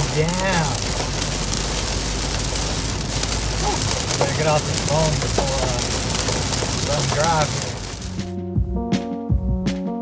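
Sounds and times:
heavy rain on car roof: 0.0 - 8.3
low road rumble: 0.0 - 8.9.

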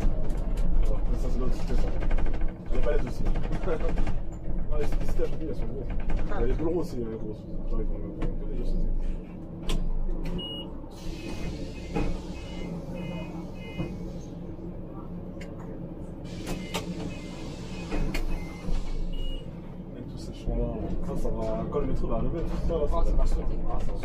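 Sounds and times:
bus engine running: 0.0 - 24.0.

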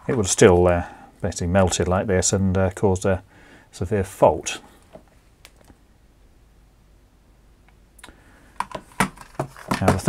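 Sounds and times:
plastic adaptor clicks and knocks: 8.6 - 10.0.

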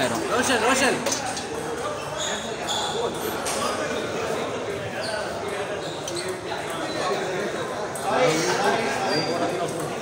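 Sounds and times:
background chatter: 0.0 - 10.0
table tennis balls clicking: 5.3 - 8.2.

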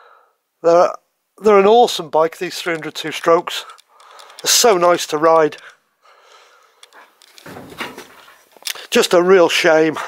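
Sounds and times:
short clicks: 2.6 - 5.8.

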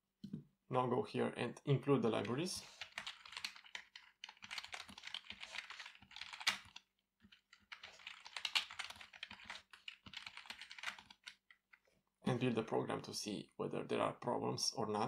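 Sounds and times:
computer keyboard typing: 2.7 - 11.6.

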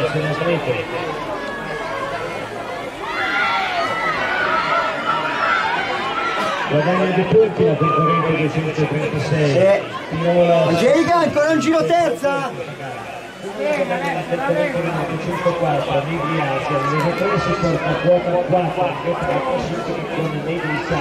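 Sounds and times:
voices talking and calling: 0.0 - 21.0
man talking: 6.7 - 21.0.

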